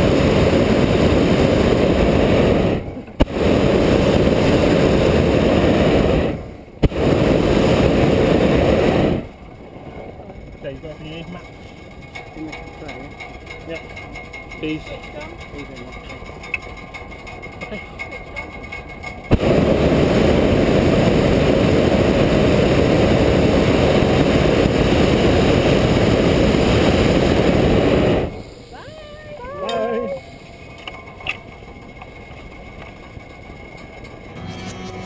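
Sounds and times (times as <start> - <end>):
propane burner roaring: 0.0 - 28.8.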